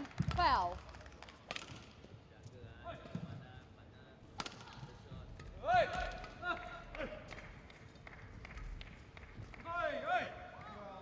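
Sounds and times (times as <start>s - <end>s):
sports hall background noise: 0.0s - 11.0s.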